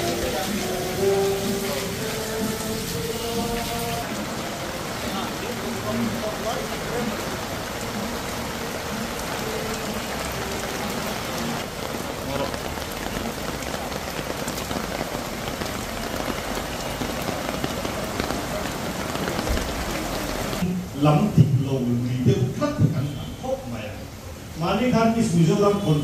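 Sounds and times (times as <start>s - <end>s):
heavy rain falling: 0.0s - 26.0s.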